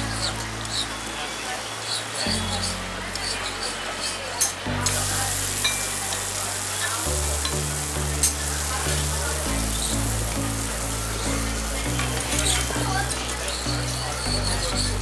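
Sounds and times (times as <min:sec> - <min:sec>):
background music: 0:00.0 - 0:15.0
batter sizzling on griddle: 0:00.0 - 0:15.0.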